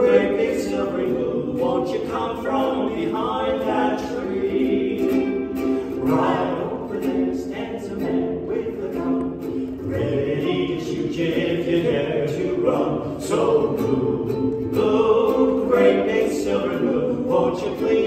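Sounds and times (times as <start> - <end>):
ukulele: 0.0 - 18.0
voices singing together: 0.0 - 18.0.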